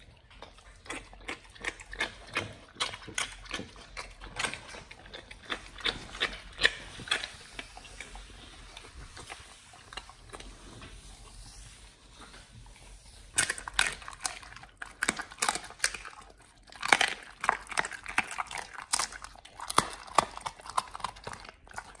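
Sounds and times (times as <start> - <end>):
dog chewing: 0.0 - 22.0.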